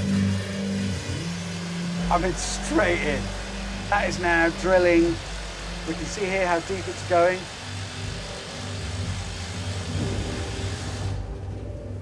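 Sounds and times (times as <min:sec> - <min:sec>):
rock drill drilling: 0:00.0 - 0:11.3
low machine hum: 0:00.0 - 0:12.0.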